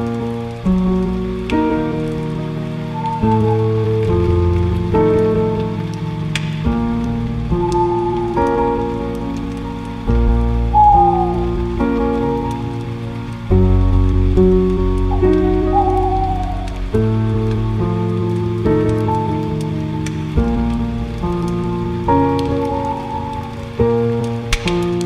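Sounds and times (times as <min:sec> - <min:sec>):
rain: 0:00.0 - 0:25.0
slow piano chords: 0:00.0 - 0:25.0
steady hiss with crackles: 0:00.0 - 0:25.0.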